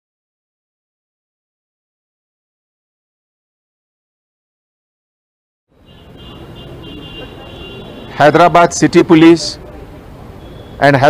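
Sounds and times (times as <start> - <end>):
low rumble of distant traffic: 5.7 - 11.0.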